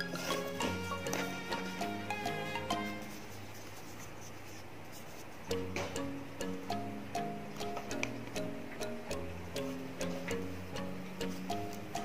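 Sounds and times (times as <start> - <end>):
fingers rubbing yarn: 0.0 - 5.6.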